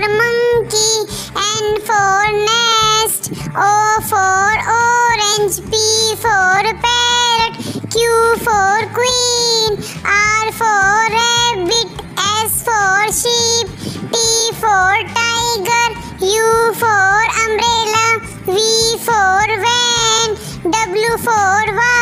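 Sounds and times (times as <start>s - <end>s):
backing track music: 0.0s - 22.0s
child singing: 0.0s - 22.0s.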